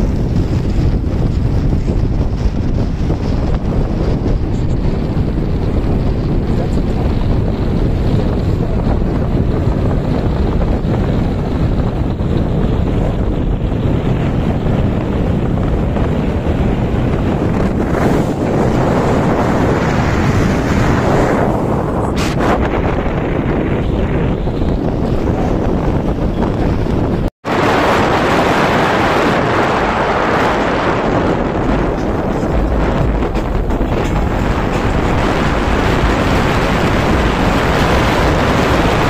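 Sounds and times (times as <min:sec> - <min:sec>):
road noise: 0:00.0 - 0:39.0
wind rumbling on microphone: 0:00.0 - 0:39.0.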